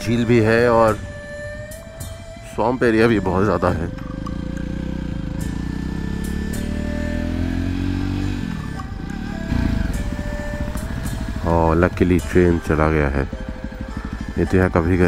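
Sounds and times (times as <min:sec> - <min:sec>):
motorcycle engine revving: 0:00.9 - 0:15.0.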